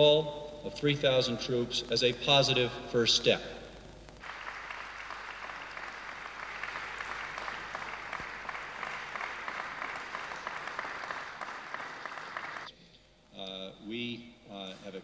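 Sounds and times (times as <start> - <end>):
audience applauding: 4.2 - 12.7.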